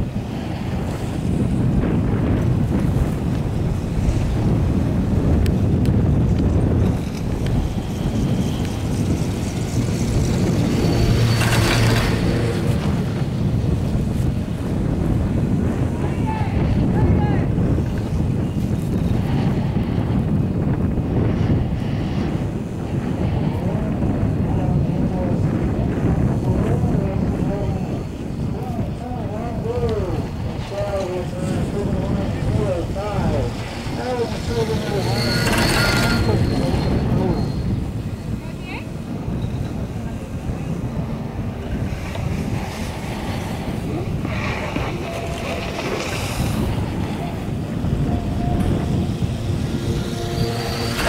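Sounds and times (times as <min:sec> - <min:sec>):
chairlift clattering rumble and hum: 0:00.0 - 0:51.0
wind rumbling on microphone: 0:00.0 - 0:51.0.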